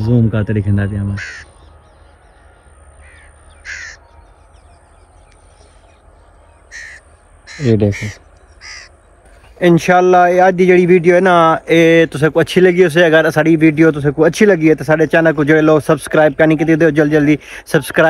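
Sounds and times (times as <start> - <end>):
bird calling: 0.0 - 9.6
low steady background noise: 0.0 - 18.0.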